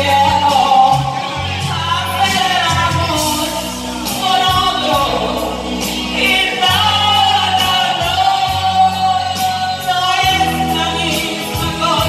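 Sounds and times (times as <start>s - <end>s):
backing track with bass and drums: 0.0s - 12.0s
women singing karaoke: 0.0s - 12.0s.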